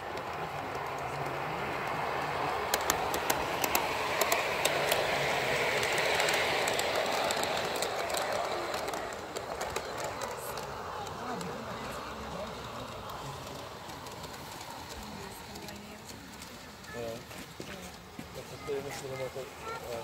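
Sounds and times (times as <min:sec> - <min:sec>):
model train rolling past: 0:00.0 - 0:20.0
wheels clicking over rail joints: 0:00.0 - 0:20.0.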